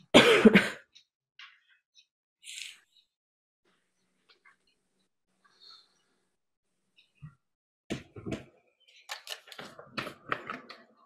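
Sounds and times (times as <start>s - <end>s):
person clearing throat: 0.0s - 0.9s.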